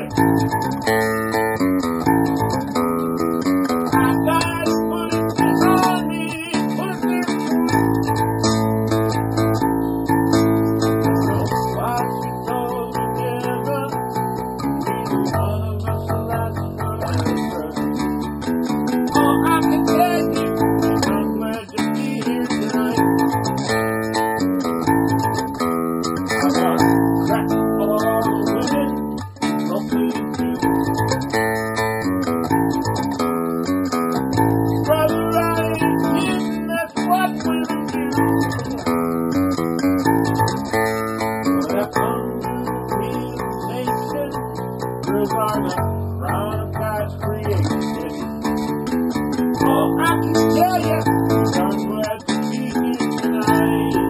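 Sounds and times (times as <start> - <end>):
electric bass notes: 0.0 - 54.0
guitar chords: 0.0 - 54.0.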